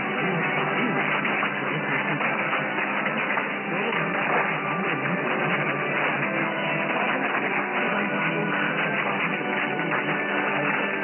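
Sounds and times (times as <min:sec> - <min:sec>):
muffled instrumental music on radio: 0:00.0 - 0:11.0
steady radio noise: 0:00.0 - 0:11.0.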